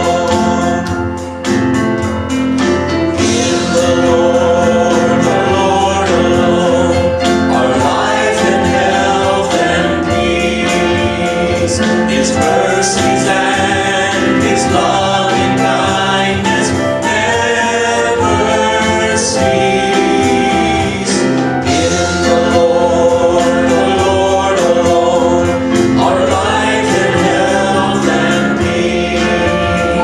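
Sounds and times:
electric keyboard: 0:00.0 - 0:30.0
men singing a gospel hymn: 0:00.0 - 0:30.0.

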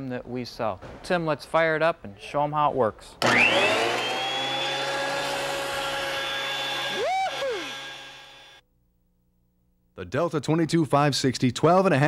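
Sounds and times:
planer motor whining: 0:03.2 - 0:08.6.

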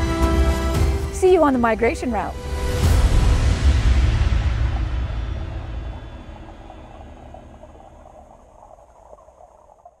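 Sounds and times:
low rumble: 0:02.3 - 0:10.0.

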